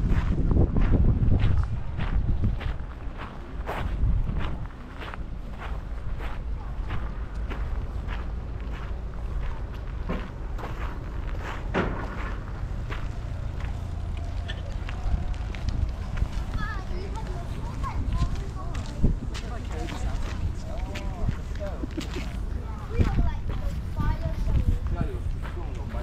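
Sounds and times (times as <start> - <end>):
footsteps crunching on gravel: 0.0 - 26.0
low rumble: 0.0 - 26.0.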